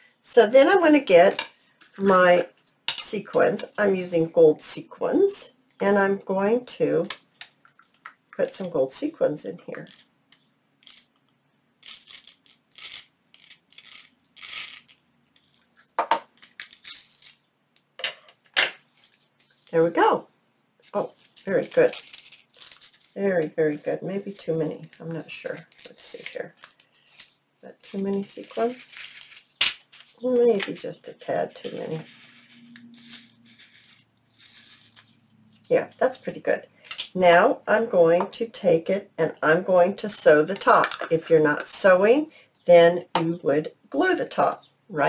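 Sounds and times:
soft paper rustle: 11.8s - 17.5s, 18.9s - 19.8s, 20.8s - 30.8s, 31.4s - 36.1s.

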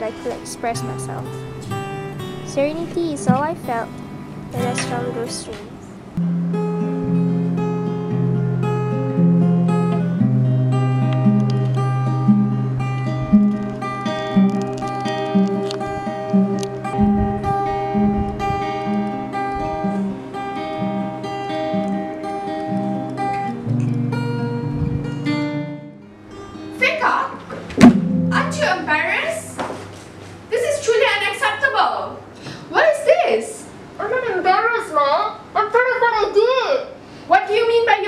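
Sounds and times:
acoustic guitar slow melody: 0.0s - 28.7s.

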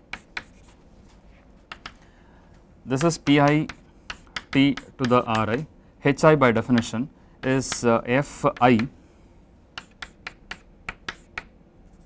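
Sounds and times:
chalk clicking on blackboard: 0.1s - 0.8s, 1.7s - 2.0s, 3.0s - 5.7s, 6.7s - 7.9s, 9.8s - 11.5s.

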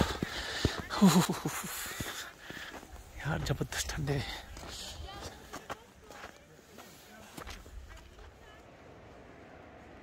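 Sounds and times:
footsteps crunching on snowy gravel: 0.0s - 8.4s.

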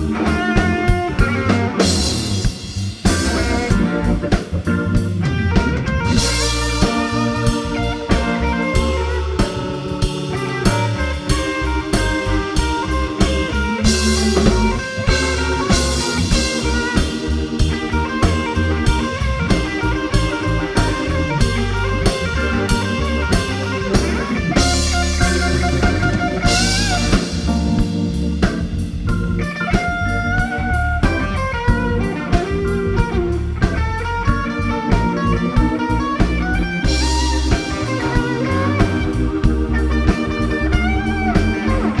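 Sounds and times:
bass: 0.0s - 42.0s
electric guitar lead: 0.0s - 42.0s
keyboard: 0.0s - 42.0s
steady drum beat: 0.0s - 42.0s.

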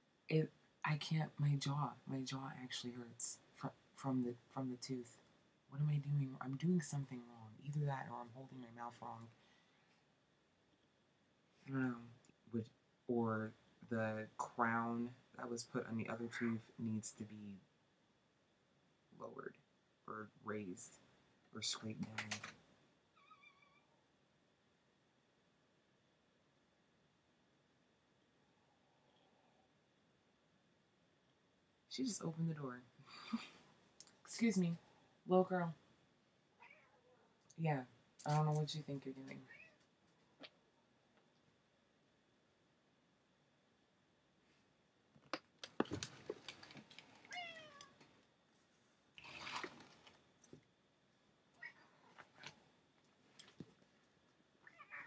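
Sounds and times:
cat meowing: 23.2s - 23.9s, 36.6s - 37.2s, 39.5s - 39.8s, 47.3s - 47.9s, 54.6s - 55.0s
rustling: 45.6s - 50.7s.

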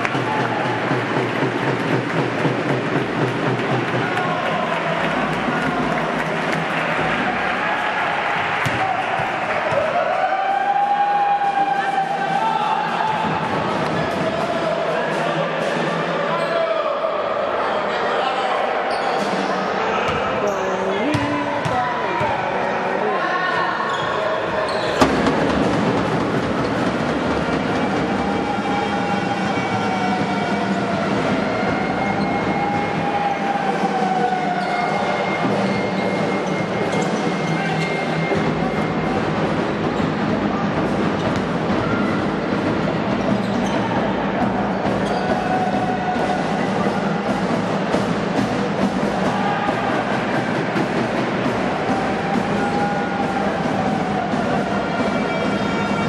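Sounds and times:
noisy sports hall din: 0.0s - 56.0s
players and spectators voices: 0.0s - 56.0s
basketball bouncing: 21.0s - 22.4s.

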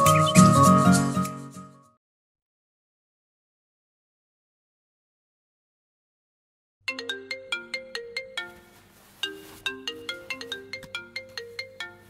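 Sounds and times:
phone ringtone melody: 6.9s - 12.0s.

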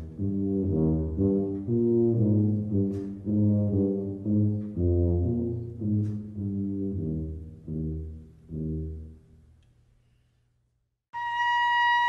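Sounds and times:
tuba playing slow melody: 0.0s - 9.6s.

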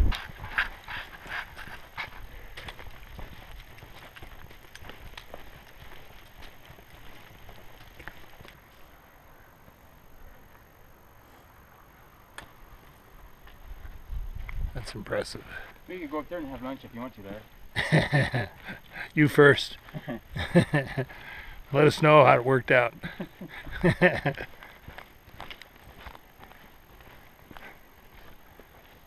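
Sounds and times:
footsteps on rocky dirt trail: 0.0s - 9.0s, 12.8s - 29.0s.

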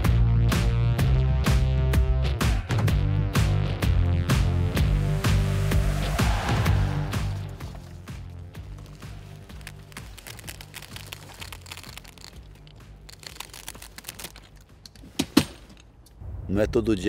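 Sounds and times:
background music: 0.0s - 16.2s
tent fabric crinkling and clicking: 7.4s - 15.8s.

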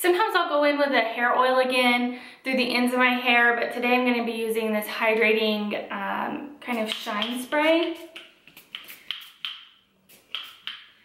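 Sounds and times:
spray bottle spritzes: 6.7s - 11.0s.

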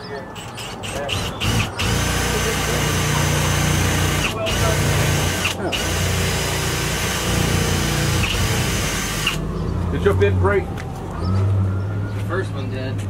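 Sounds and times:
electric power drill drilling: 0.4s - 9.4s.

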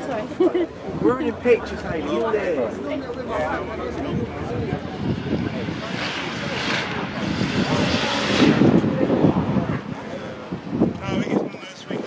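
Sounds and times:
engine passing by: 0.9s - 10.7s.

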